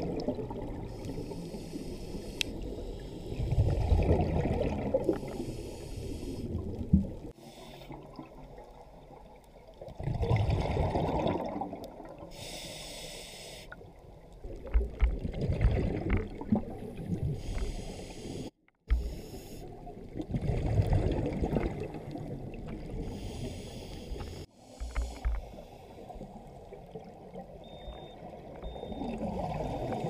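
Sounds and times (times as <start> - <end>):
regulator inhalation hiss: 0.9 - 3.4, 5.2 - 6.6, 12.3 - 13.8, 17.4 - 19.7, 23.1 - 26.2
bubbles of diver exhaling: 3.4 - 5.3, 10.0 - 12.2, 15.2 - 17.4, 20.1 - 23.0.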